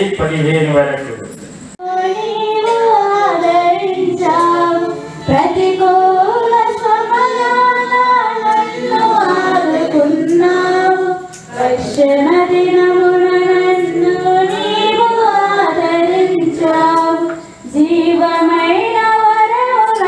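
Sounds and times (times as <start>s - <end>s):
women singing a hymn: 1.8s - 20.0s.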